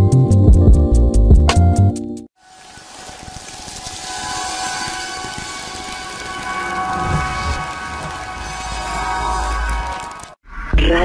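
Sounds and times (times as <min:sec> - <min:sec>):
sustained tones: 0:02.4 - 0:10.4
low rumble: 0:04.7 - 0:10.4.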